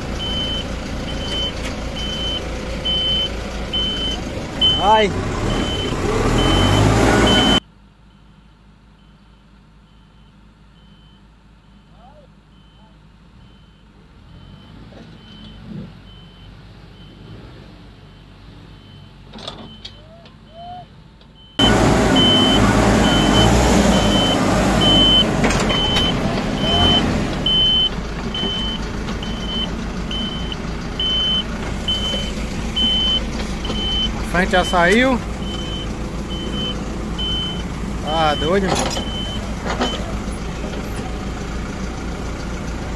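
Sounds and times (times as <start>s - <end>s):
tractor engine under load: 0.0s - 7.6s, 12.4s - 42.9s
backhoe engine under load: 0.0s - 42.9s
backup alarm beeping: 0.2s - 8.4s, 9.0s - 17.4s, 18.1s - 40.1s.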